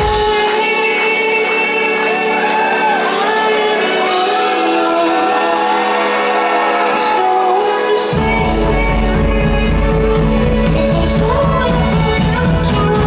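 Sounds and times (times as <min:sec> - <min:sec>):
person singing: 0:00.0 - 0:13.0
sustained band chords: 0:00.0 - 0:13.0.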